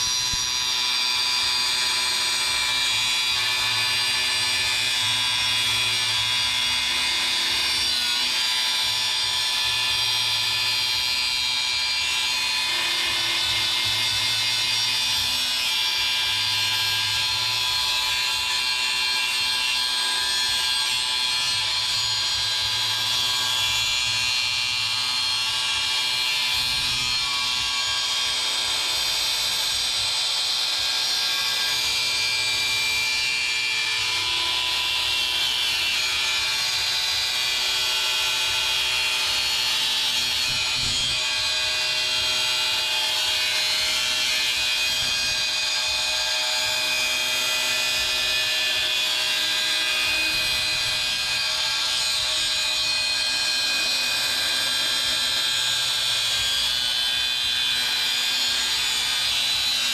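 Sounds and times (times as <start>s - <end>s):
angle grinder cutting steel: 0.0s - 59.9s.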